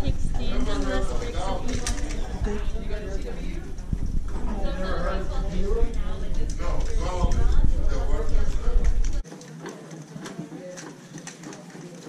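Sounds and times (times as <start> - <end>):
murmured voices: 0.0 - 12.0
low rumble: 1.2 - 9.2.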